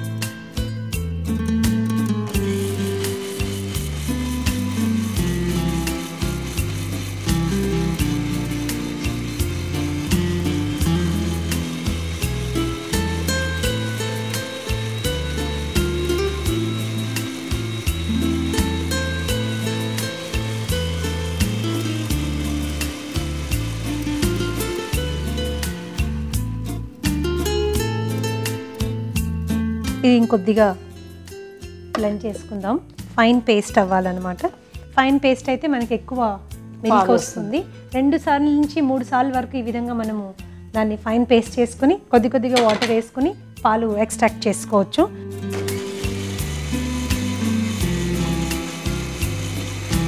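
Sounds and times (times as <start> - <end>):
background music with bass: 0.0 - 50.0
electric mixer grinder running: 1.6 - 29.3, 44.5 - 50.0.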